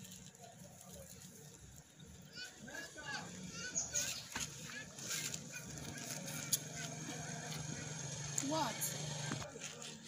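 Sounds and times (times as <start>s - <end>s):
birds chirping and clucking: 3.4s - 8.1s.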